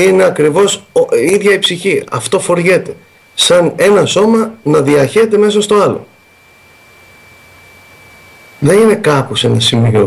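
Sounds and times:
high-pitched steady tone: 0.0s - 10.0s
low background hiss: 0.0s - 10.0s.

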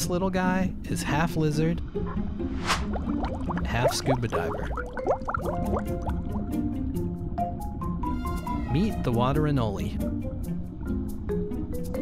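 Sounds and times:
background music: 0.0s - 12.0s
air bubbles under water: 2.8s - 6.4s.

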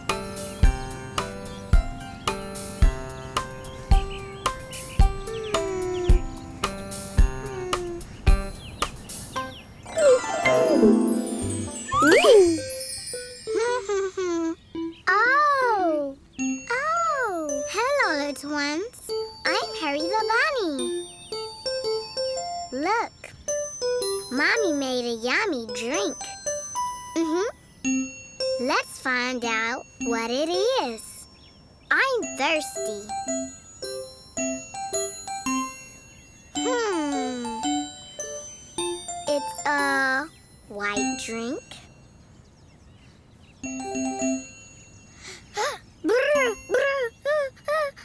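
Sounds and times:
children's music with chiming bells: 0.0s - 48.0s
pitched sliding tone: 9.9s - 12.7s
wordless voice-like jingle tune: 9.9s - 14.4s, 16.5s - 20.9s
ringing bell tones: 9.9s - 15.0s, 43.6s - 45.5s.

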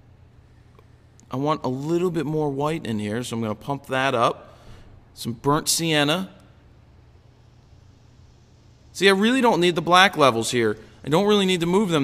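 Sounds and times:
faint low hum: 0.0s - 12.0s
soft hiss: 0.0s - 12.0s.

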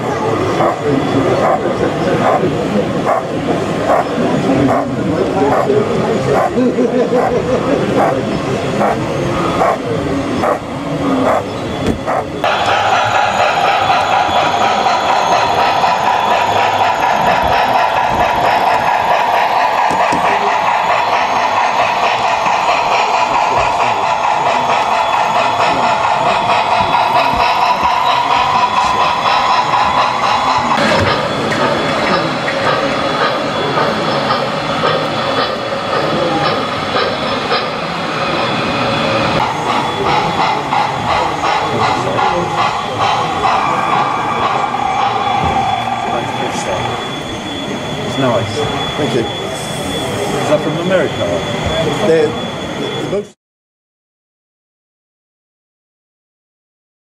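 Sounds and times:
model steam locomotive running: 0.0s - 53.4s.

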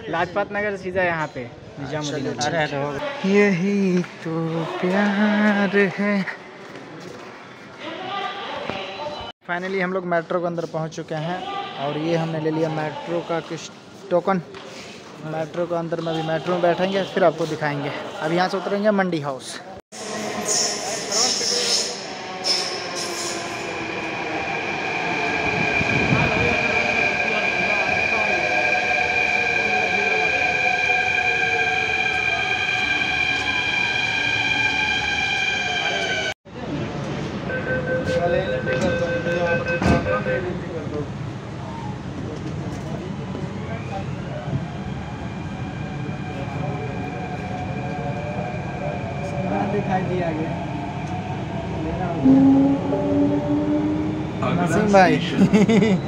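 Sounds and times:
train braking: 19.9s - 36.4s, 37.3s - 40.8s.

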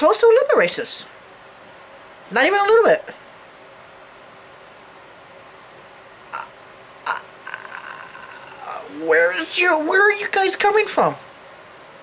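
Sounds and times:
faint mouth noises: 6.3s - 8.9s.

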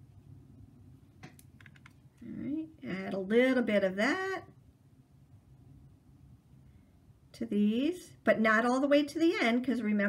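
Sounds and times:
paintbrush clicking and scraping: 1.2s - 2.2s
person speaking: 2.2s - 4.5s.

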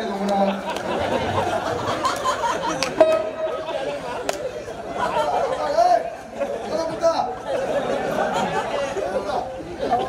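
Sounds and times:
voices chattering: 0.0s - 10.0s.

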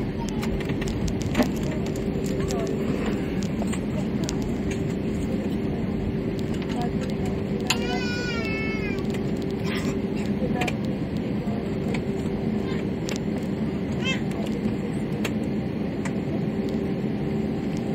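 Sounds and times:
jet engines humming in cabin: 0.0s - 17.9s
small child crying: 7.7s - 9.0s.

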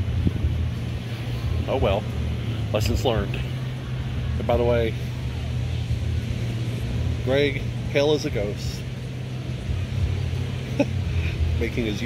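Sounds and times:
wind on microphone: 0.0s - 1.7s.

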